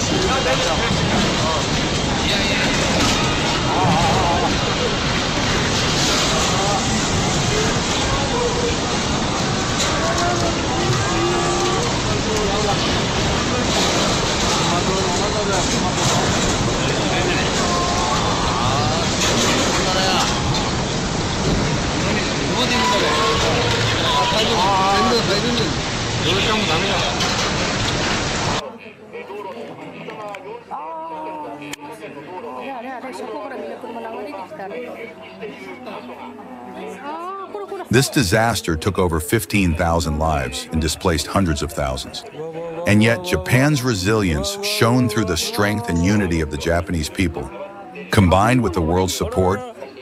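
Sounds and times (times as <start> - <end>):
people talking over one another: 0.0 - 27.6, 28.3 - 50.0
floodwater rushing: 0.0 - 28.6
people calling and shouting: 0.0 - 50.0.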